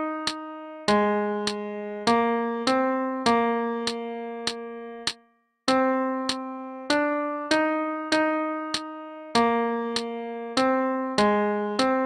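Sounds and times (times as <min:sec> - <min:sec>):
keyboard playing melody: 0:00.0 - 0:12.0.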